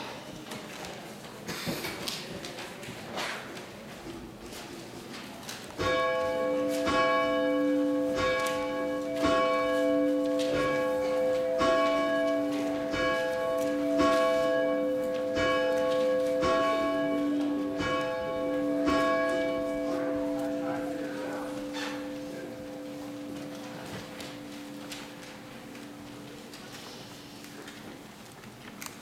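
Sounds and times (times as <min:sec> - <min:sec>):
church bell tolling: 0:05.8 - 0:26.6.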